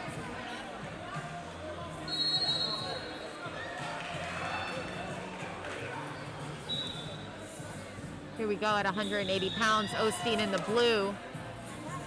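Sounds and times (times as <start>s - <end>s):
background voices and chatter: 0.0s - 12.0s
high whistle: 2.1s - 3.0s, 6.7s - 7.2s.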